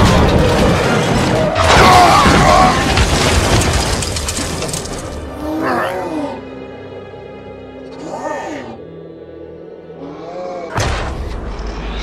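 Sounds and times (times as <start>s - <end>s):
crash: 0.0s - 5.3s
background music: 0.0s - 12.0s.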